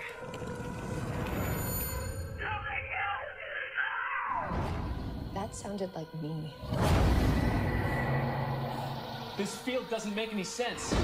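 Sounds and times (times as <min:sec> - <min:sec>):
low rumbling drone: 0:06.5 - 0:09.8.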